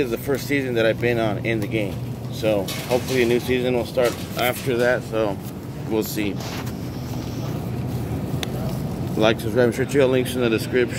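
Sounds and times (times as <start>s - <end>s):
low steady rumble: 0.0s - 10.9s.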